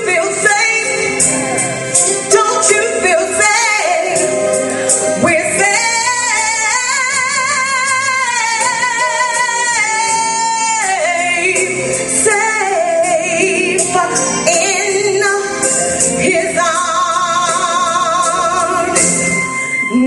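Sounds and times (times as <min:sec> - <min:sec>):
woman singing gospel amplified: 0:00.0 - 0:19.2
musical accompaniment: 0:00.0 - 0:20.0.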